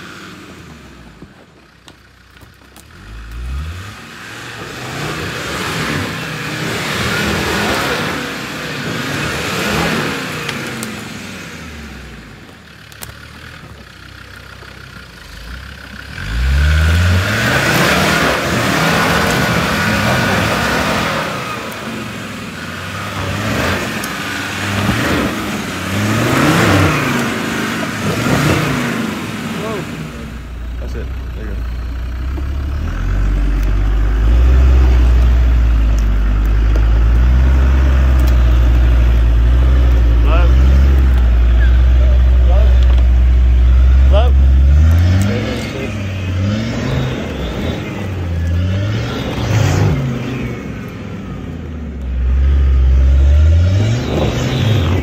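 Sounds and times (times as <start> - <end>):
diesel engine revving hard: 0.0 - 1.2, 2.8 - 13.8, 15.2 - 55.0.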